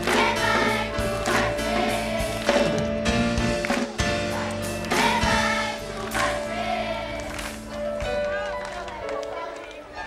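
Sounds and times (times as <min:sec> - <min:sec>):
children's choir singing: 0:00.0 - 0:02.9, 0:03.8 - 0:10.0
instrumental accompaniment with beat: 0:00.0 - 0:10.0.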